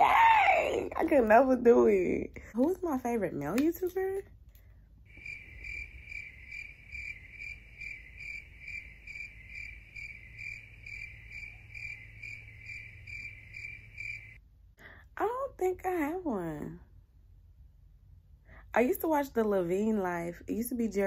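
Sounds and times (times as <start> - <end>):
crickets chirping sound effect: 5.1 - 14.4.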